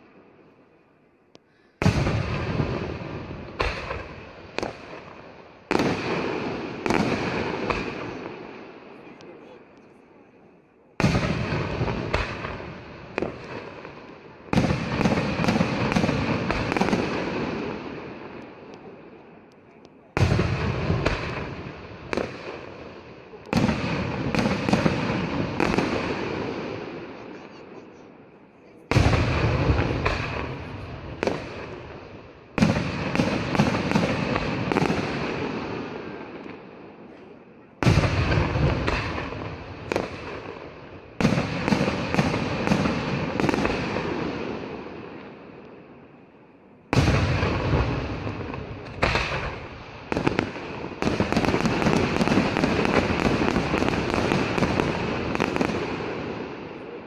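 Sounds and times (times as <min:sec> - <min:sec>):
fireworks bursting: 0:00.0 - 0:57.0
fireworks crackling: 0:00.0 - 0:57.0.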